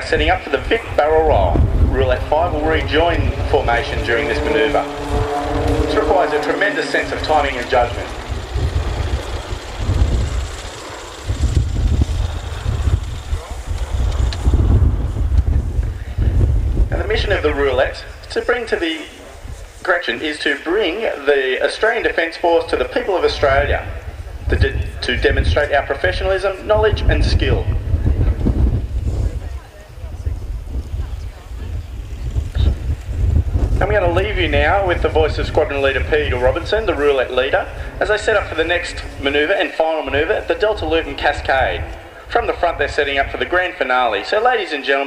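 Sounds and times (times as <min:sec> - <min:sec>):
faint voices: 0:00.0 - 0:14.5, 0:15.9 - 0:32.9
wind buffeting microphone: 0:00.0 - 0:20.0, 0:21.9 - 0:44.6
distant aircraft drone: 0:00.0 - 0:45.0.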